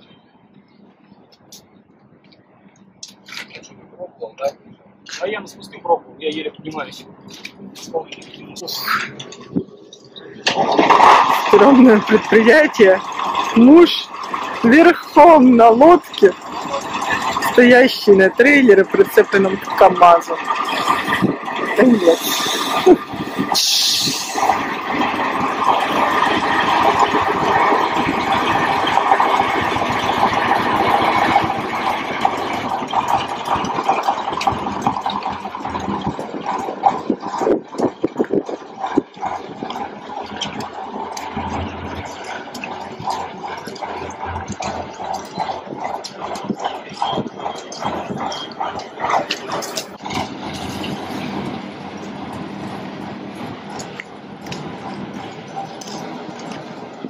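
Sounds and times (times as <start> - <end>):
diesel truck engine under load: 0.0 - 57.0
tyres hissing through wet slush: 10.5 - 24.6.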